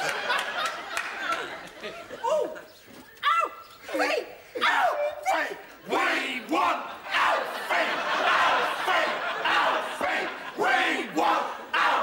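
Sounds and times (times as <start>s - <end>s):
people cheering and yelling: 0.0s - 12.0s.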